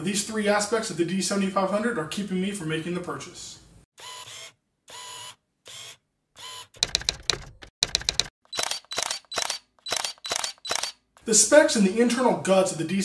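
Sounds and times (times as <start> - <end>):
mechanical clicks and clacks: 6.8 - 10.9.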